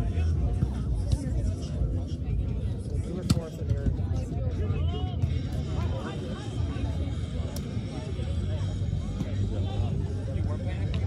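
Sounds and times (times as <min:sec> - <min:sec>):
distant crowd chatter: 0:00.0 - 0:11.0
music playing: 0:00.0 - 0:11.0.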